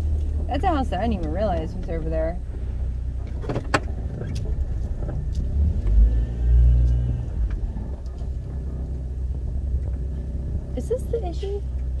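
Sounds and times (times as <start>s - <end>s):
low engine and road rumble: 0.0s - 12.0s.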